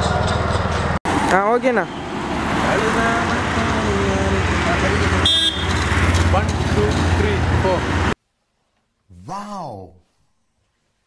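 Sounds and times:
vehicle engine running: 0.0 - 8.2
horn toot: 5.0 - 6.1.

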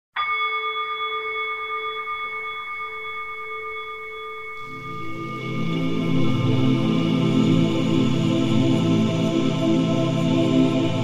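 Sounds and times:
bell-like chime ringing: 0.2 - 6.8.

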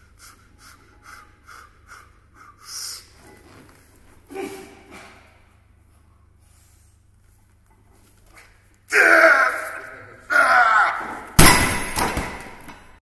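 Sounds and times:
person yelling with effort: 8.9 - 11.3.

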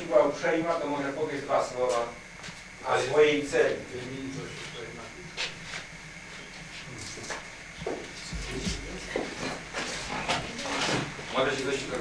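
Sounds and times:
knocks and shuffling: 7.8 - 10.5.

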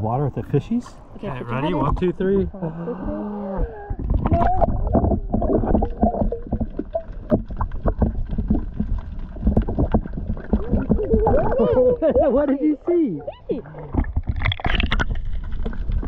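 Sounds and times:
underwater water sloshing and gurgling: 0.0 - 16.0.

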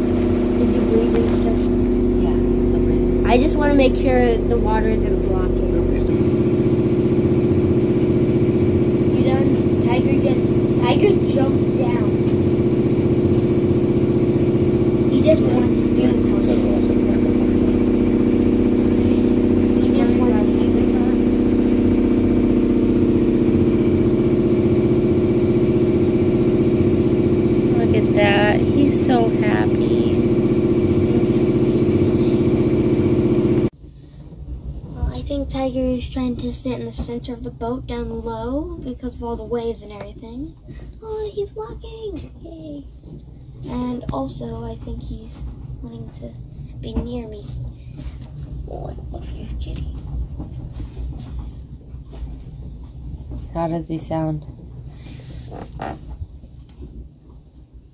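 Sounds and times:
boat engine droning: 0.0 - 57.9.

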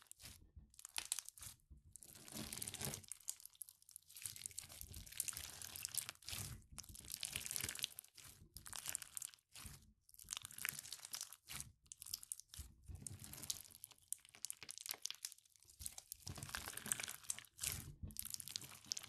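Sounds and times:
slime beads crunching: 0.0 - 1.5.

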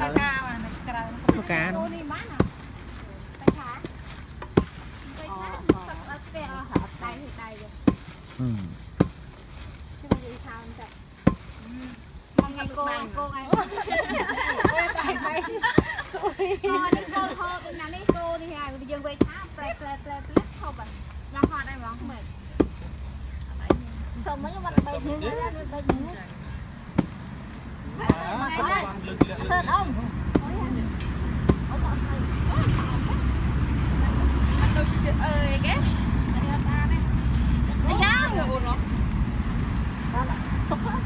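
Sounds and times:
pestle thudding in wooden mortar: 3.4 - 6.0, 11.2 - 11.6, 30.2 - 30.8, 31.4 - 31.8
voices: 10.0 - 39.1, 40.0 - 41.0
wooden pestle pounding in mortar: 11.2 - 11.6, 12.3 - 13.8, 30.2 - 30.8, 31.4 - 31.8.

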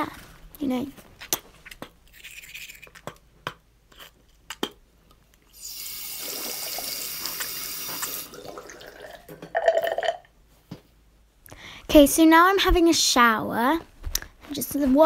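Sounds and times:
tap water running into sink: 5.6 - 9.6.

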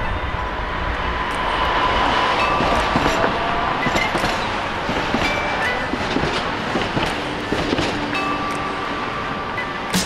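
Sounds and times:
trolley rumbling past: 0.0 - 9.9
wheels clicking on track: 0.9 - 10.0.

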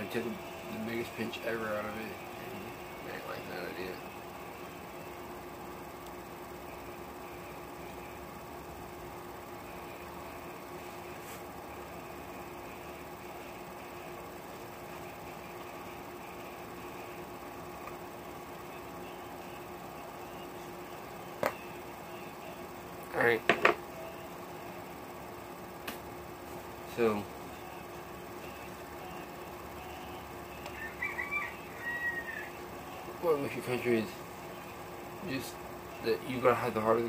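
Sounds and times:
air conditioner humming: 0.0 - 37.0.

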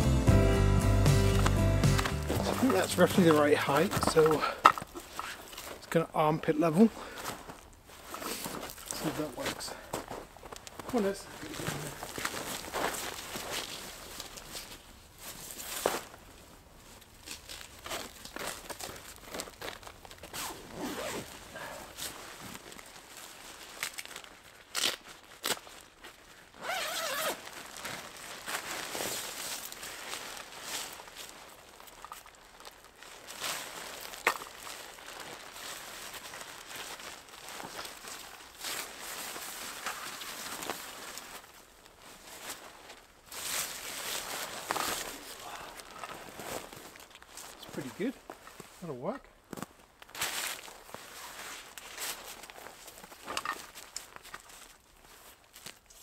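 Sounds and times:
tent fabric rustling: 0.0 - 56.0
footsteps in snow: 1.0 - 16.2, 25.0 - 48.9, 49.5 - 56.0.

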